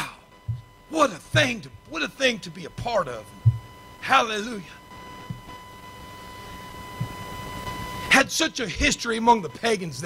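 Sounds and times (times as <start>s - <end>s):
faint high whine: 0.0s - 10.0s
soft low knock: 0.5s - 0.7s, 3.4s - 3.7s.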